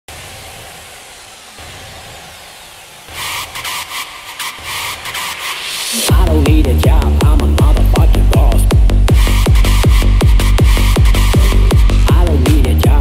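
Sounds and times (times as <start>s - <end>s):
electronic dance music: 0.1s - 13.0s.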